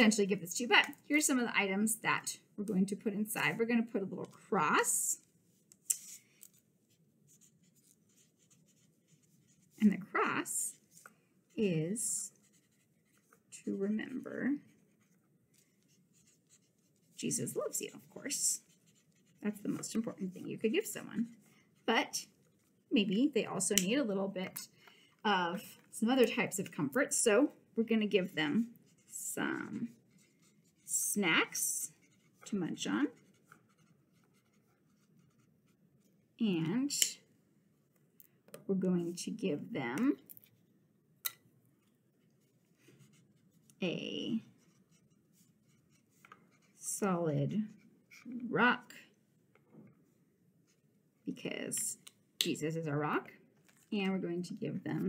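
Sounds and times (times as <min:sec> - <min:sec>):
marker scratching on paper: 0:05.9 - 0:06.2, 0:06.9 - 0:22.8, 0:28.2 - 0:35.8, 0:42.4 - 0:43.6, 0:44.2 - 0:47.0.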